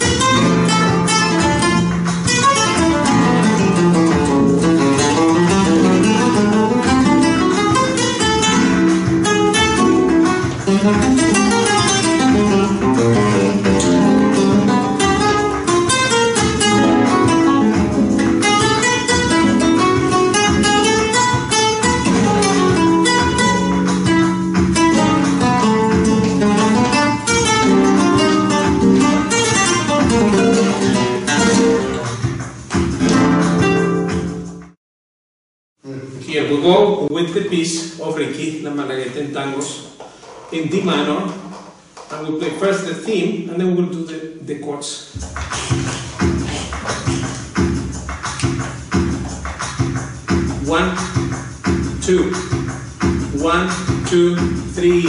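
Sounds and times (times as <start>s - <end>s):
flamenco guitars playing: 0.0s - 34.8s, 45.2s - 55.0s.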